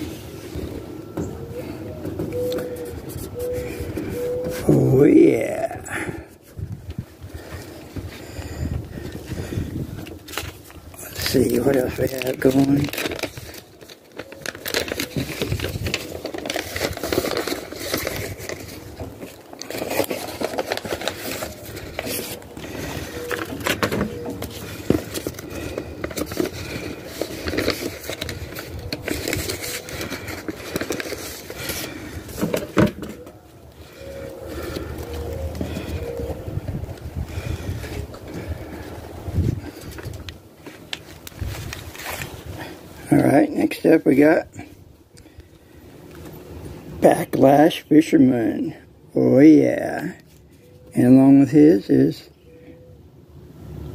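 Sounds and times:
indistinct voices: 4.1 - 6.3.

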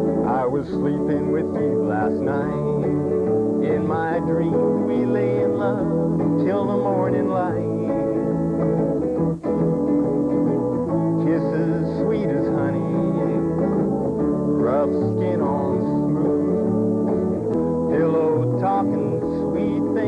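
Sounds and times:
guitar accompaniment: 0.0 - 20.0
man singing country song: 0.1 - 8.6, 11.1 - 16.9, 17.8 - 20.0.

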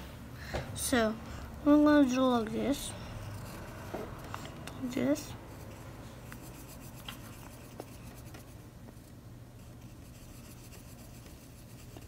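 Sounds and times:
pencil scratching on paper: 2.6 - 8.6, 9.6 - 12.0.

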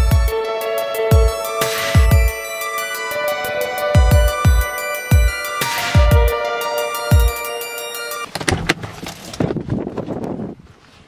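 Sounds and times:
car door latch clicks: 8.3 - 9.5.

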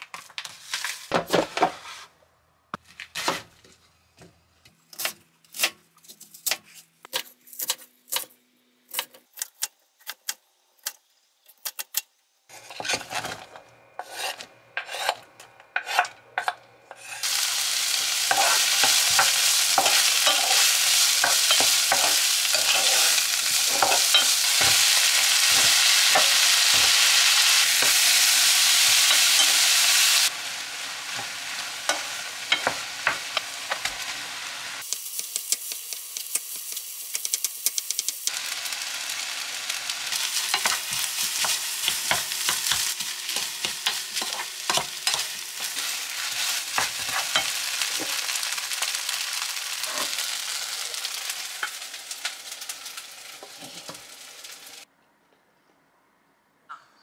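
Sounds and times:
wooden spoon scraping a pan: 0.4 - 2.1, 12.5 - 15.2, 15.8 - 17.4, 18.2 - 28.1, 40.4 - 48.2
onion sizzling in hot oil: 12.5 - 15.2, 16.9 - 54.9.

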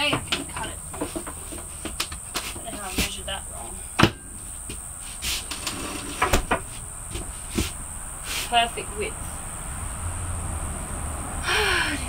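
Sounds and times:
cabinet scraping: 0.0 - 3.4, 5.1 - 8.6.

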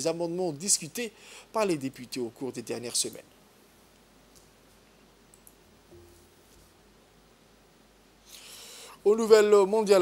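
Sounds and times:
soft hiss: 0.0 - 10.0.

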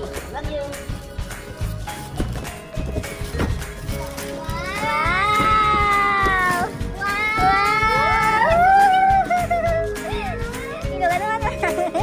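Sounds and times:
background music: 0.0 - 12.0
child's sliding cries: 4.5 - 9.5.

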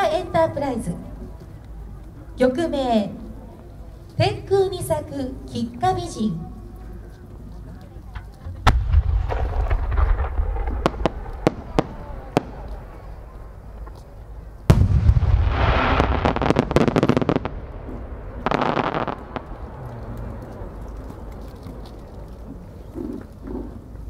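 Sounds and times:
firework deep boom: 8.6 - 14.0, 14.6 - 21.6
sharp cracks: 8.6 - 14.1
firework crackle: 8.6 - 22.8.

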